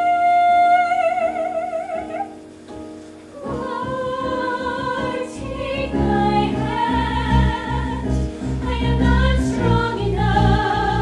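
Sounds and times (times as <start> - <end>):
ensemble singing with accompaniment: 3.2 - 11.0.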